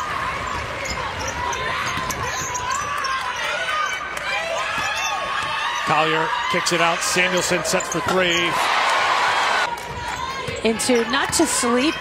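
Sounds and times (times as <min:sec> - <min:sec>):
sneakers squeaking: 0:00.0 - 0:08.8, 0:09.6 - 0:12.0
murmur of arena crowd: 0:00.0 - 0:12.0.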